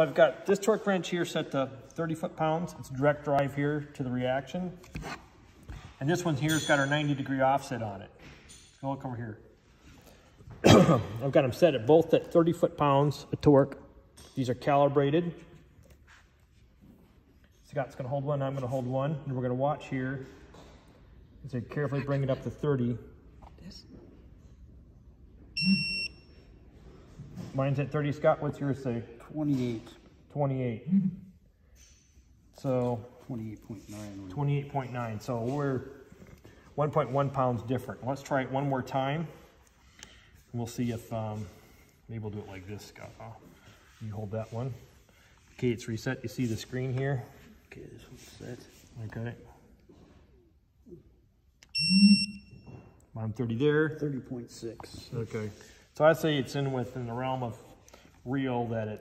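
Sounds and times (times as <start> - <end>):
torque wrench high beep: 25.6 - 26.3, 51.7 - 52.7.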